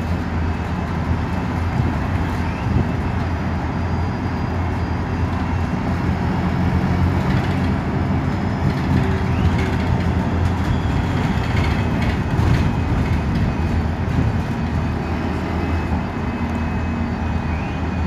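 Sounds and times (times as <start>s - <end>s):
bus engine drone: 0.0s - 18.0s
road noise: 0.0s - 18.0s.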